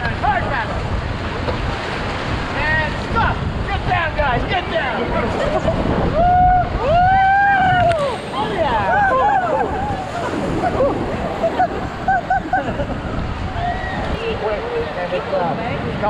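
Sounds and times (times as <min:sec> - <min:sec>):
river rushing: 0:00.0 - 0:16.0
people laughing: 0:05.1 - 0:06.1, 0:07.6 - 0:13.7
people yelling: 0:06.1 - 0:14.8.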